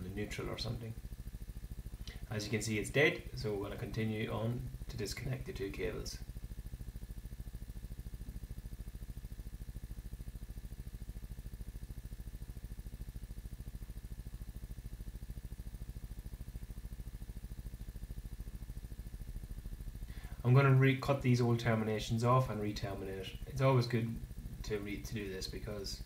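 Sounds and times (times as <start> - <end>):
low hum with fast pulse: 0.0 - 26.0.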